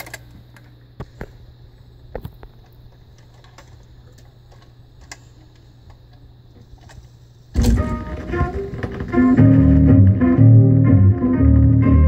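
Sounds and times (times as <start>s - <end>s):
vinyl surface crackle and hum: 0.0s - 12.0s
song with guitar and bass: 7.7s - 12.0s.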